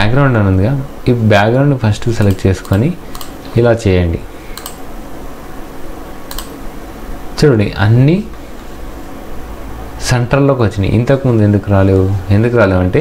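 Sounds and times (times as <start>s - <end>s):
person speaking: 0.0s - 4.8s, 7.3s - 8.4s, 10.0s - 13.0s
computer clicks: 2.2s - 3.6s, 4.5s - 4.9s, 6.3s - 6.6s.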